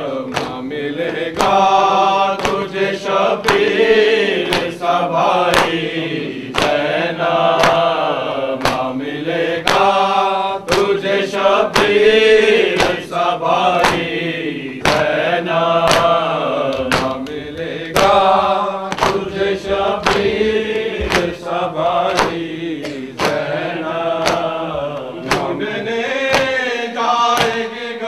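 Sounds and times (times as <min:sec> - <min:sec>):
men chanting: 0:00.0 - 0:28.0
hands slapping chests: 0:00.2 - 0:26.7, 0:27.4 - 0:27.8.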